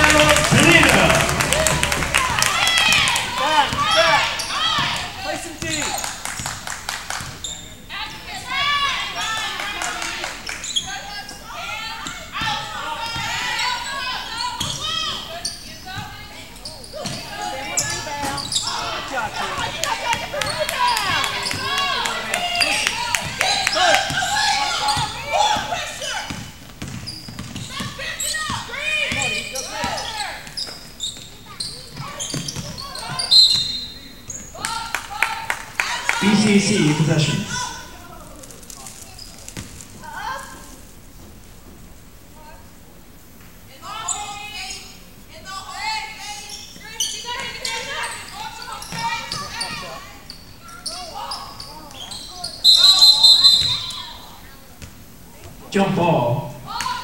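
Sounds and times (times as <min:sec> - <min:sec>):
sneakers squeaking: 0:00.0 - 0:06.6, 0:07.2 - 0:34.9, 0:35.8 - 0:41.8, 0:43.9 - 0:57.0
voices calling out: 0:00.0 - 0:40.8, 0:42.6 - 0:57.0.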